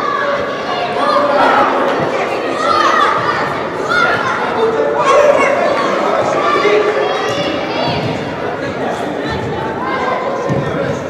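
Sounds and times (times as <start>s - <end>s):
young voices shouting in a hall: 0.0s - 11.0s.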